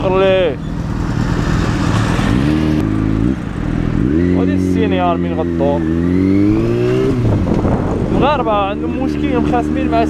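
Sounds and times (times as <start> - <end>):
rushing wind: 0.0 - 10.0
vehicle engine revving: 0.3 - 10.0.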